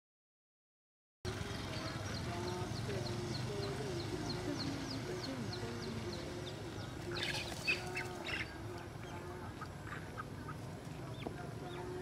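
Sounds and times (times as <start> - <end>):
low steady hum: 1.3 - 12.0.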